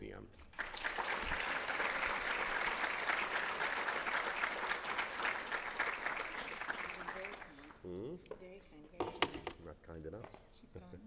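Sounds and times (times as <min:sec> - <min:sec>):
audience applauding: 0:00.5 - 0:07.8.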